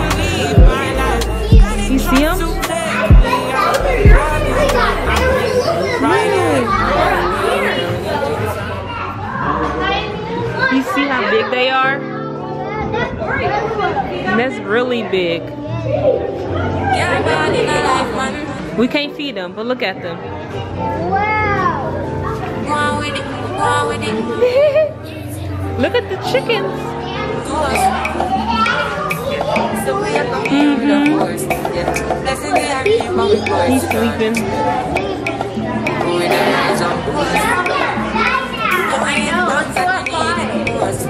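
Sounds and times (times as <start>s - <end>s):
background music: 0.0s - 8.9s, 10.6s - 41.0s
young children chattering: 0.0s - 41.0s.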